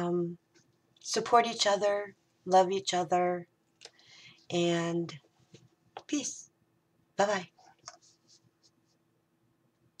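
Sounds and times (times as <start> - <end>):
faint steady hum: 0.0 - 10.0
soft rustles: 4.4 - 6.1, 7.5 - 9.1.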